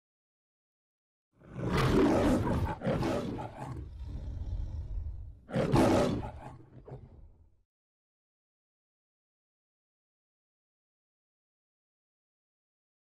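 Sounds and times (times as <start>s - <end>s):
lion roaring: 1.4s - 7.5s
low rumbling growl: 3.5s - 5.5s.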